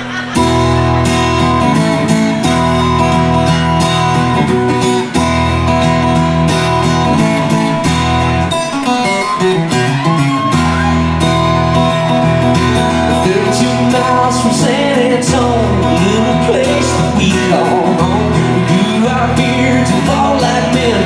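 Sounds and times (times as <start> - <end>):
acoustic guitar strumming: 0.0 - 21.0
picked guitar phrase: 0.4 - 21.0.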